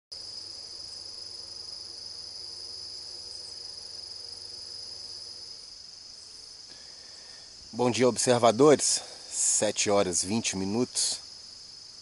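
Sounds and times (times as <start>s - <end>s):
crickets chirping: 0.1s - 12.0s.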